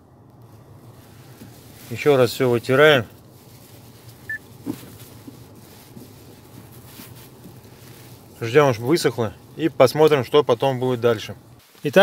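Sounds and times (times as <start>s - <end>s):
napkin rubbing leather: 3.5s - 8.4s.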